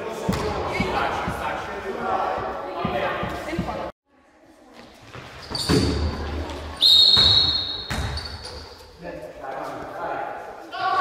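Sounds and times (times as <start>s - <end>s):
voices echoing in hall: 0.0s - 11.0s
basketball bouncing: 0.3s - 1.5s, 7.2s - 8.4s
high-pitched shoe squeal: 5.4s - 6.0s, 6.8s - 8.8s.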